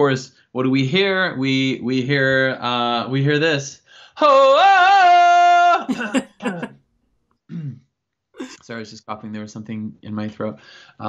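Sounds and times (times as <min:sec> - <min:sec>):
man clearing throat: 0:05.9 - 0:06.7, 0:07.5 - 0:08.6.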